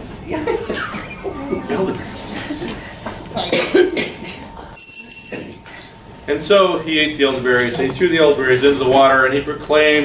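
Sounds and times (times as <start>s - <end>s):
people laughing: 0.3s - 4.6s
cough-like burst: 3.4s - 4.5s.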